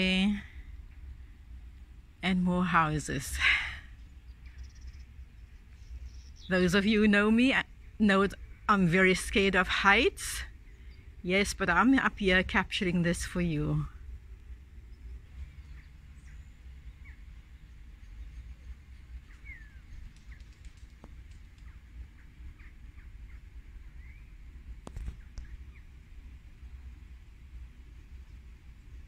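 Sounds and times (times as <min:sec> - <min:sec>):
steady low rumble: 0:00.0 - 0:29.0
birds chirping: 0:02.3 - 0:27.1.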